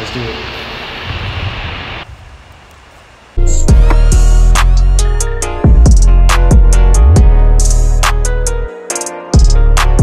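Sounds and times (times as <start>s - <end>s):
room noise hiss: 0.0s - 3.4s.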